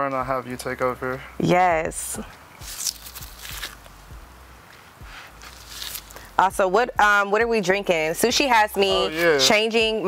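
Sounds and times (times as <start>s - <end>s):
soft rustling: 4.6s - 6.4s.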